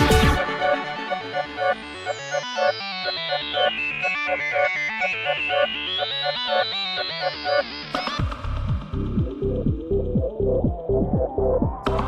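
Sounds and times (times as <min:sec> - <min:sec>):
electronic music: 0:00.0 - 0:12.0.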